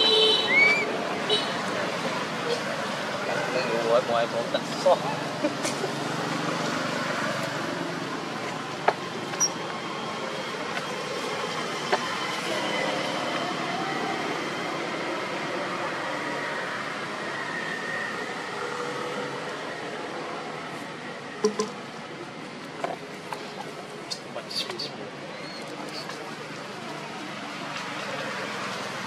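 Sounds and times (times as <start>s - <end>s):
outdoor background noise: 0.0s - 29.0s.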